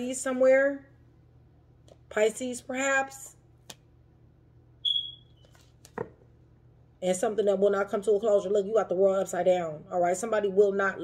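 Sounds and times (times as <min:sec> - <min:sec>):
high ringing beep: 0:04.8 - 0:05.4.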